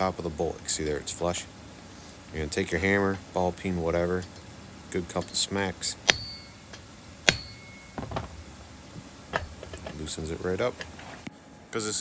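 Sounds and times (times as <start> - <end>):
hammer striking metal nut: 6.0 - 8.6, 9.3 - 10.0.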